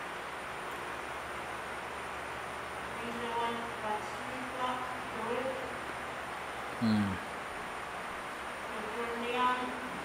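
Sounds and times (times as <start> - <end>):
woman speaking: 2.9 - 5.8, 8.7 - 10.0.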